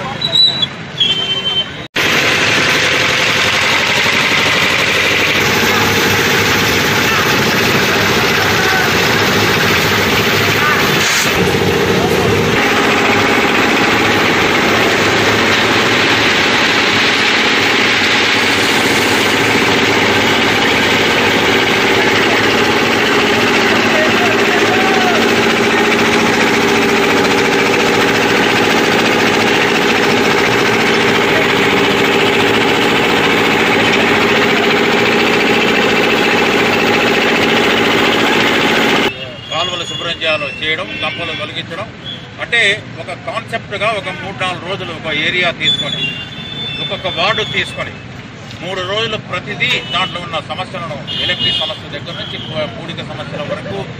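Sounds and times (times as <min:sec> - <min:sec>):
backhoe diesel engine running: 0:02.0 - 0:39.1
crowd voices: 0:04.8 - 0:40.6.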